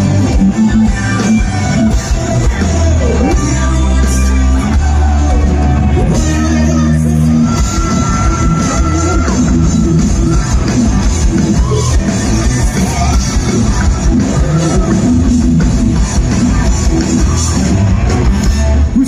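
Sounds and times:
bass guitar: 0.0s - 19.0s
electric guitars: 0.0s - 19.0s
fast drumming: 0.0s - 19.0s
person singing: 0.2s - 10.7s.

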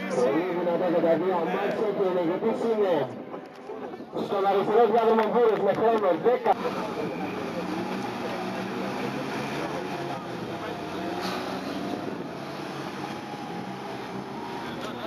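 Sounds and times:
car engines idling: 6.5s - 15.0s.

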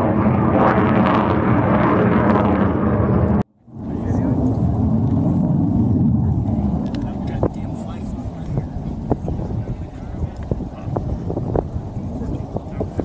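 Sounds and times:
distant jet engine roar: 0.0s - 13.0s.

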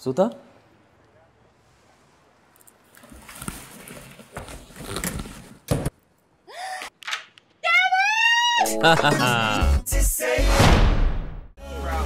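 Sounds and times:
rustling and handling noises: 2.4s - 5.9s
loud thump: 10.6s - 11.5s.

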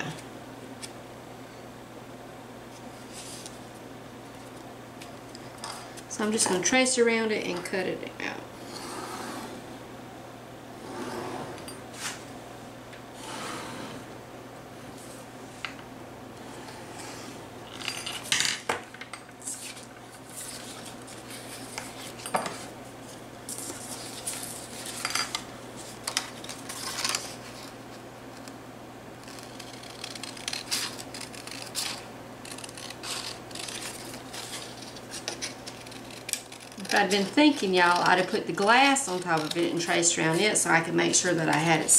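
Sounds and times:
low steady hum: 0.0s - 41.9s.

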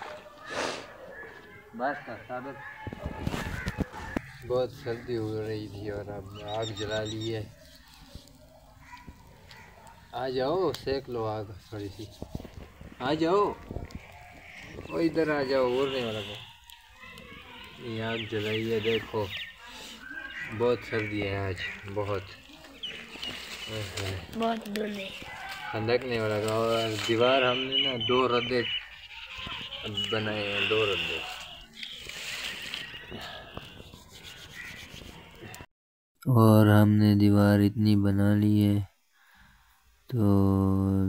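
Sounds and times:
fire crackling: 0.0s - 35.7s
hands rubbing: 29.4s - 35.6s.

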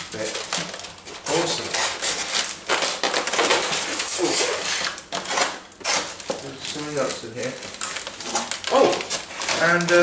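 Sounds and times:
plastic wrapping rustling: 0.0s - 10.0s
styrofoam scraping cardboard box: 1.3s - 7.2s.

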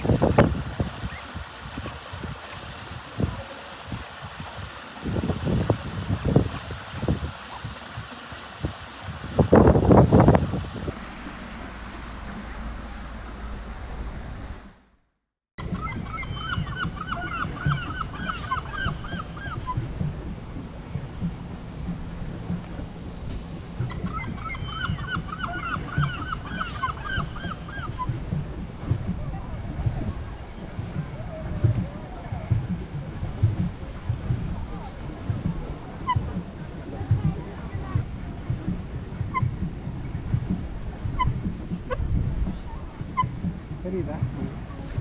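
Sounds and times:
wind noise: 0.0s - 14.6s, 15.6s - 45.0s
water lapping: 0.0s - 14.9s, 15.6s - 45.0s
geese honking: 23.9s - 28.1s.

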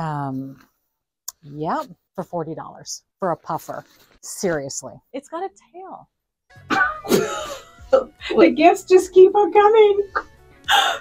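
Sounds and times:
faint background music: 1.3s - 11.0s.

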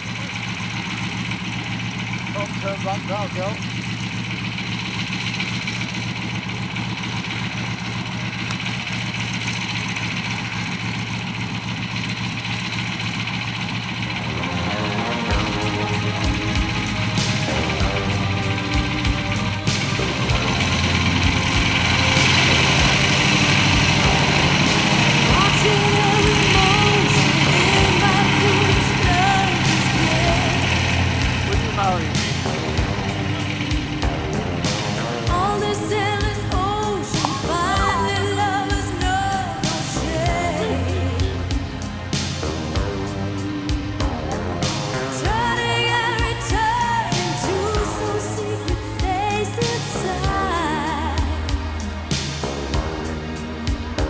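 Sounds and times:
propeller plane engine drone: 0.0s - 54.0s
music with beat and singing: 14.4s - 54.0s.

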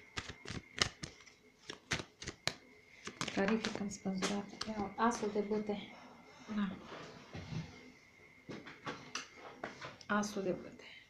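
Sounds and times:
cards shuffling and clicking: 0.0s - 4.8s.

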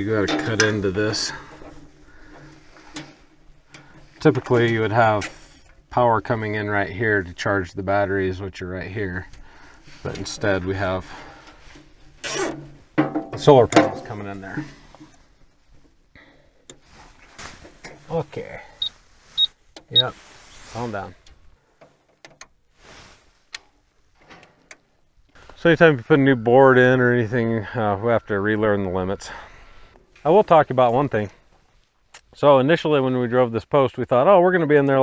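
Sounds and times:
faint rustling: 0.0s - 32.5s
brief rustle: 16.7s - 21.9s.

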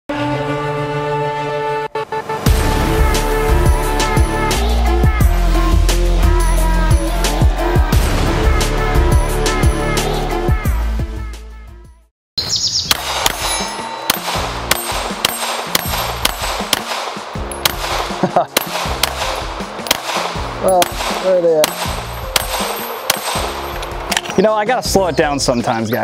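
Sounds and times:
intro music: 1.9s - 10.5s, 12.9s - 24.2s
steel targets ringing: 12.9s - 24.1s
pistol shots: 12.9s - 24.3s.

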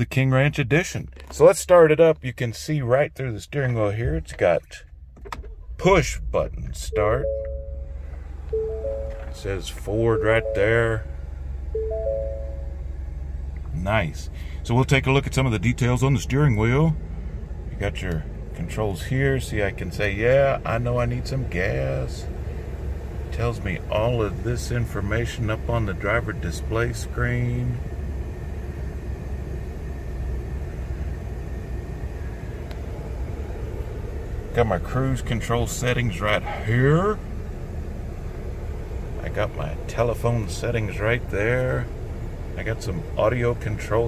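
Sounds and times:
engine idling: 0.0s - 44.0s
steady low hum: 0.0s - 44.0s
climate-control fan blowing: 2.8s - 44.0s
bell-like dashboard chime: 6.8s - 12.9s
brief click: 8.5s - 9.4s.

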